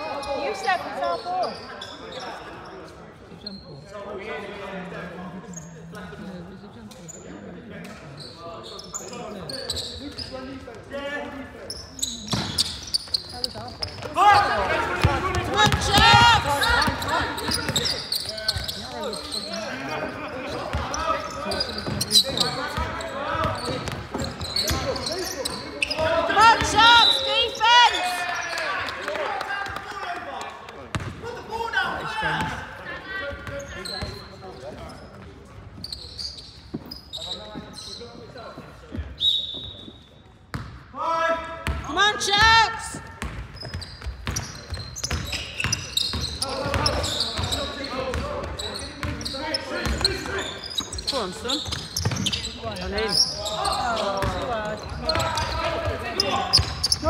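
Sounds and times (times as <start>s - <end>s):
sneakers squeaking on floor: 0.0s - 4.0s, 6.8s - 28.6s, 30.9s - 31.3s, 32.2s - 40.8s, 41.6s - 57.0s
voices calling out: 11.7s - 28.9s
basketball bouncing: 15.0s - 17.9s, 30.9s - 31.2s, 43.2s - 47.5s, 51.6s - 52.4s, 54.2s - 57.0s.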